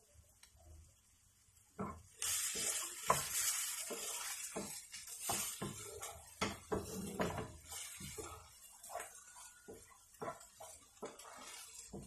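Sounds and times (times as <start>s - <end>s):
vegetables sizzling in a pan: 0.0s - 12.0s
wooden spatula scraping a pan: 1.8s - 12.0s.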